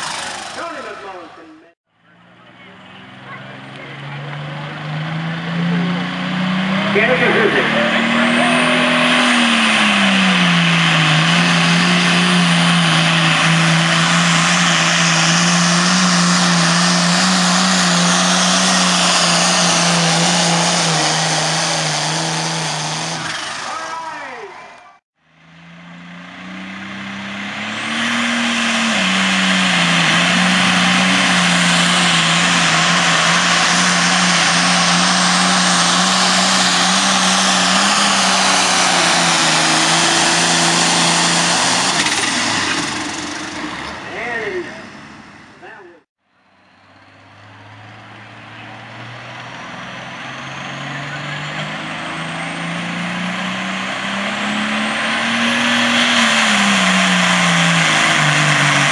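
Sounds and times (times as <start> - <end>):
tractor diesel engine droning: 0.0 - 58.9.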